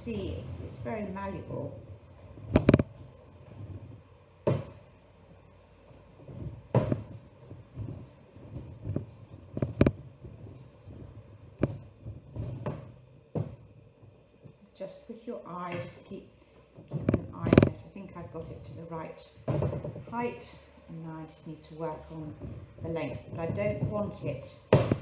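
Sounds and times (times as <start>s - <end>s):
rolling pin rumble: 0.0s - 5.1s, 5.9s - 14.5s, 16.8s - 20.6s, 21.4s - 25.0s.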